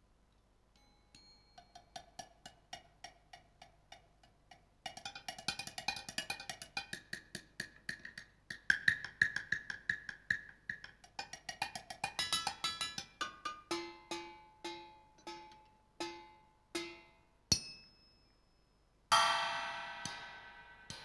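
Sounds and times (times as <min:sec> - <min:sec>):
cymbal strike ringing: 0:19.1 - 0:21.0
struck metal percussion notes: 0:19.1 - 0:21.0.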